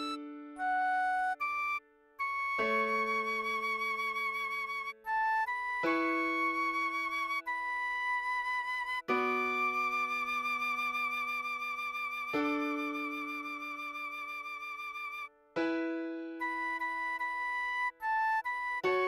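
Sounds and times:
piano chords ringing: 0.0s - 1.6s
recorder playing slow melody: 0.0s - 6.9s.

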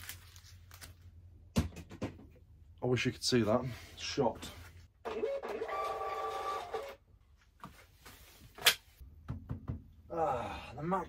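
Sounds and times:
label printer whining: 5.1s - 6.9s.

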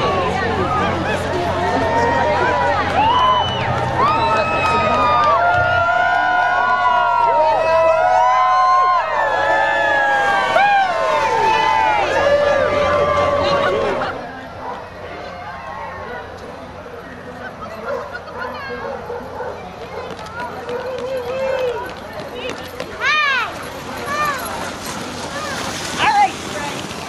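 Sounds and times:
people talking: 0.0s - 5.4s, 10.2s - 27.0s
sled dogs howling: 0.0s - 16.2s.

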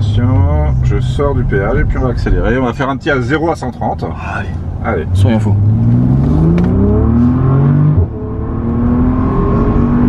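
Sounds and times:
car engine accelerating: 4.5s - 10.0s.

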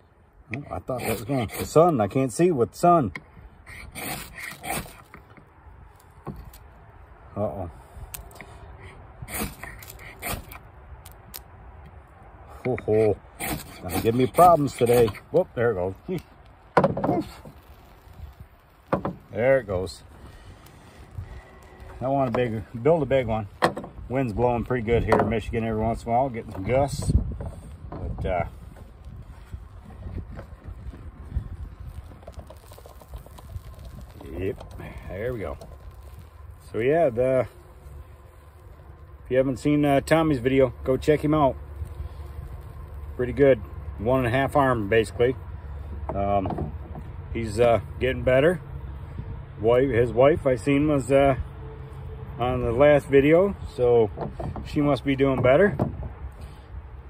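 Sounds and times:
ferro rod scraped with striker: 3.7s - 5.2s, 9.3s - 10.6s, 13.4s - 15.3s
wind buffeting microphone: 17.1s - 38.4s.

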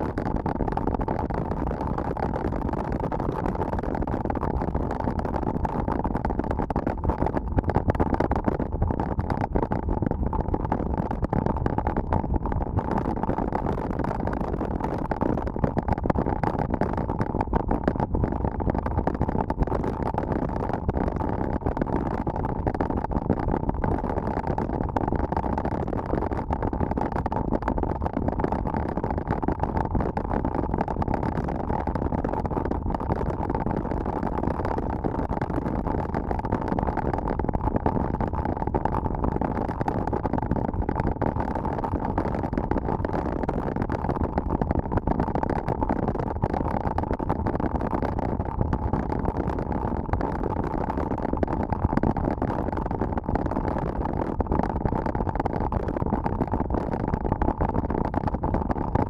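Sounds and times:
wind noise on microphone: 0.0s - 59.0s.

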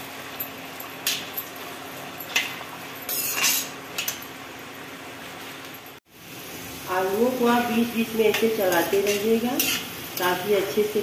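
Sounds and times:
metal spoon scraping pan: 3.1s - 4.1s, 8.3s - 10.3s
potatoes sizzling in hot oil: 6.1s - 11.0s.

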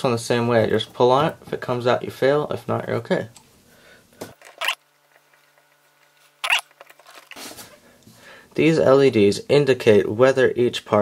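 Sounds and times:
rustling handling noise: 4.2s - 8.2s.

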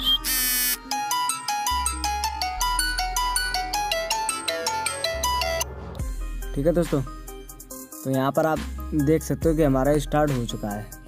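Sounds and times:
phone ringtone melody: 0.0s - 5.7s.

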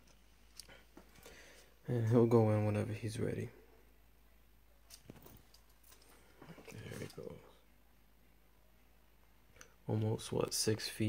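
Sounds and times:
man speaking: 1.8s - 3.6s, 6.6s - 7.6s, 9.8s - 11.0s.

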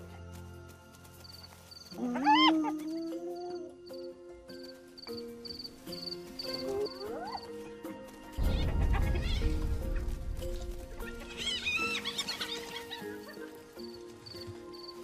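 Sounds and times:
hyena cubs calling: 1.9s - 4.1s, 6.1s - 7.6s, 11.0s - 13.9s.

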